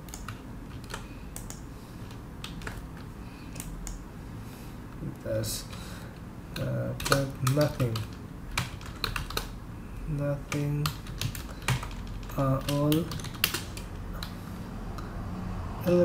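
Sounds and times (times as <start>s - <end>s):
computer keyboard typing: 0.0s - 4.0s, 6.5s - 14.4s.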